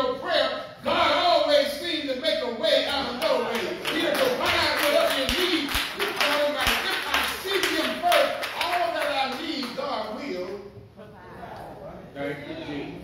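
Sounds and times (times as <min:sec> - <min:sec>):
congregation responding: 0:00.0 - 0:10.6
handclaps: 0:03.1 - 0:09.9.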